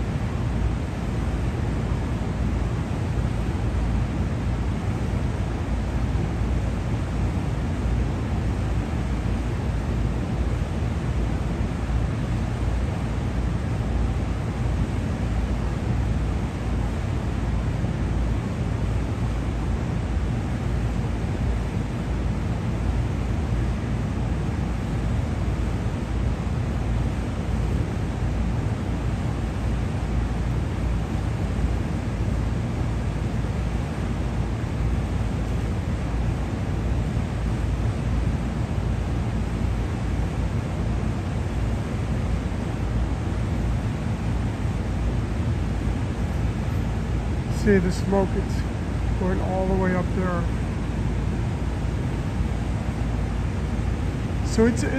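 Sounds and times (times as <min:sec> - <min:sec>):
low city rumble: 0:00.0 - 0:54.9
ventilation hiss: 0:00.0 - 0:54.9.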